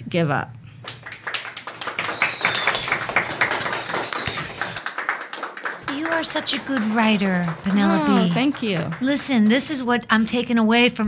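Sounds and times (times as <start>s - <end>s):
small group clapping: 0.8s - 9.8s.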